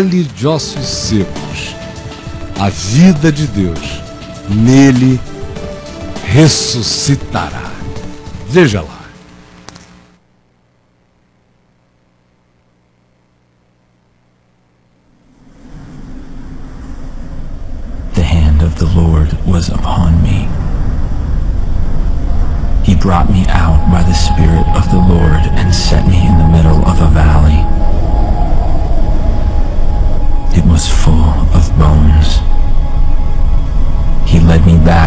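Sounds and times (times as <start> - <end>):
low rumbling noise: 0.7 - 35.0
faint held tone: 15.9 - 35.0.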